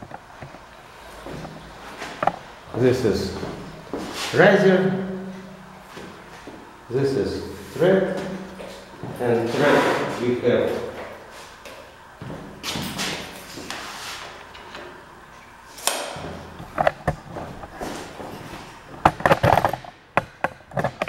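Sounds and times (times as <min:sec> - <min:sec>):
sharp knocks and clicks: 0:19.0 - 0:21.0.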